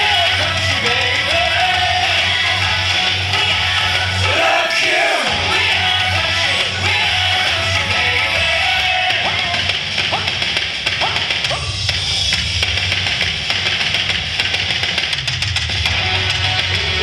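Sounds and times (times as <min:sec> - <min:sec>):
rock dance music: 0:00.0 - 0:17.0.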